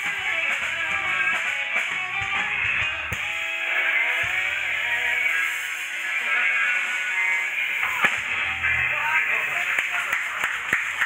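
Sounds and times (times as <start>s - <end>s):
scattered clapping: 9.4s - 11.0s.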